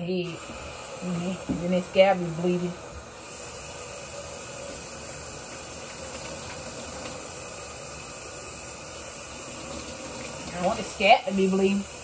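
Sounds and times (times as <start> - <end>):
faucet running into sink: 3.3 - 12.0.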